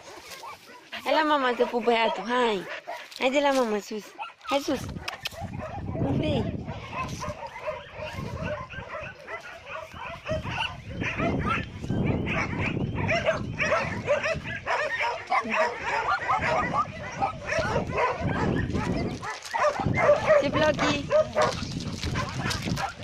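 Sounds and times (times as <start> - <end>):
dogs barking and yipping: 0.0 - 23.0
dogs whining: 6.7 - 23.0.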